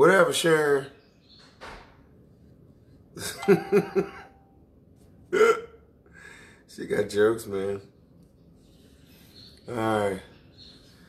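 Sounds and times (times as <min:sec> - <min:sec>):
person laughing: 0:03.2 - 0:04.4.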